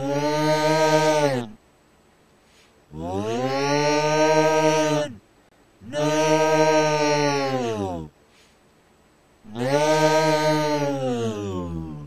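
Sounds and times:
creature yelling: 0.0s - 1.6s, 2.9s - 5.2s, 5.8s - 8.1s, 9.5s - 12.0s.

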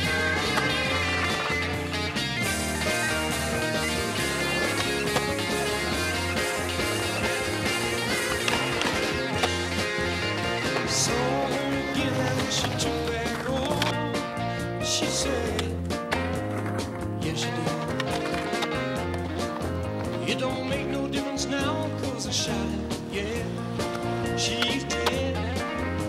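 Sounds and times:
music soundtrack: 0.0s - 26.0s
skateboard wheels rolling on concrete: 0.0s - 26.0s
skateboard clacking on ground: 0.1s - 1.6s, 3.0s - 10.9s, 12.2s - 14.1s, 17.6s - 20.3s.

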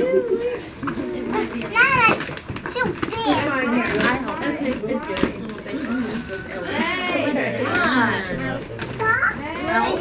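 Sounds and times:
young children talking: 1.3s - 10.0s.

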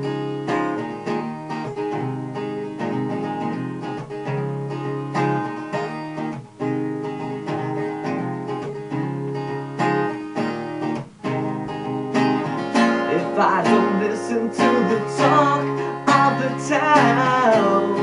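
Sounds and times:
acoustic guitar strumming chords: 0.0s - 18.0s.

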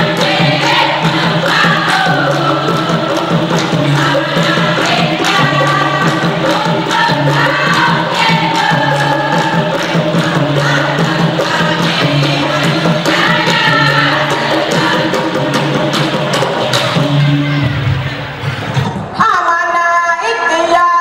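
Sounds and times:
women's chorus singing in unison: 0.0s - 16.7s
rhythmic hand-clapping: 0.0s - 17.3s.

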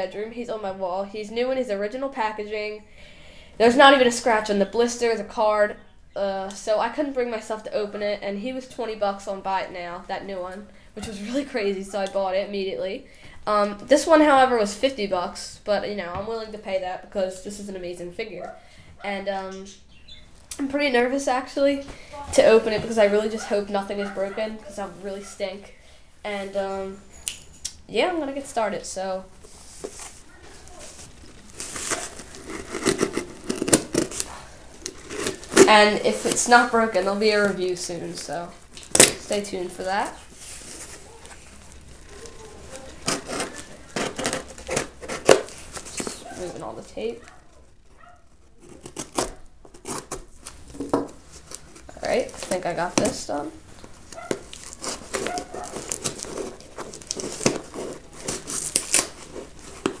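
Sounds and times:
tape and plastic crinkling: 29.0s - 60.0s
knife cutting packing tape: 31.6s - 36.4s, 42.2s - 46.2s, 48.5s - 50.6s, 54.2s - 60.0s.

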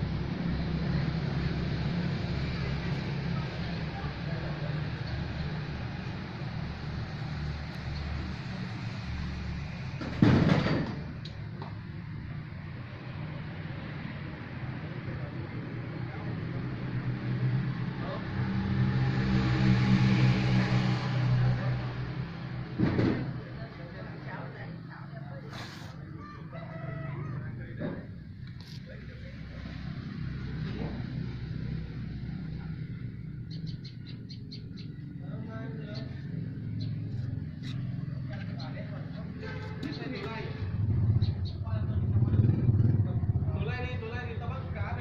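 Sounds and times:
vehicle engine passing: 11.8s - 45.0s
indistinct voices talking: 23.2s - 45.0s.

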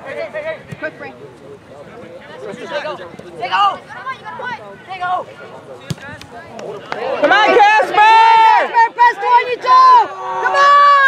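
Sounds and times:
people shouting and calling: 6.8s - 11.0s.

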